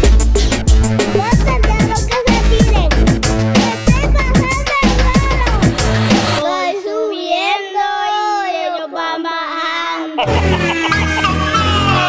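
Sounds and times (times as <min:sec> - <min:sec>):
reggaeton drums and bass: 0:00.0 - 0:06.4
high-pitched voice singing: 0:01.2 - 0:02.9, 0:03.6 - 0:12.0.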